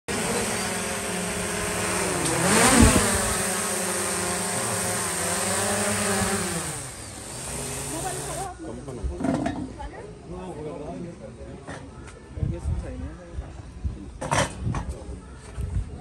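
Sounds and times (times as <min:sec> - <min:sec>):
drone propellers buzzing: 0:00.1 - 0:08.5.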